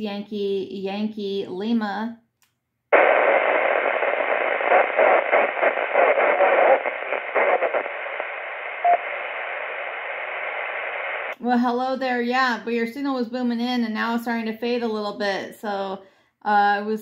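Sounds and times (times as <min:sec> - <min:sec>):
radio static hiss: 0:03.0 - 0:11.4.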